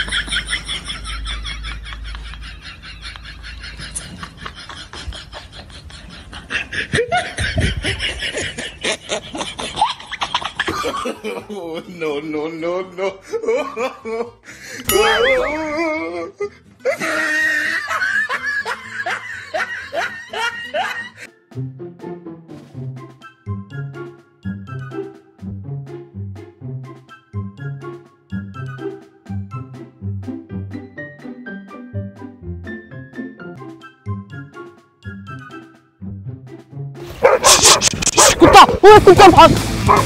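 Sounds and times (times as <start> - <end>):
background music: 0.0 - 40.0
dog barking rapidly: 37.2 - 40.0
bursts of laughter: 37.4 - 39.6.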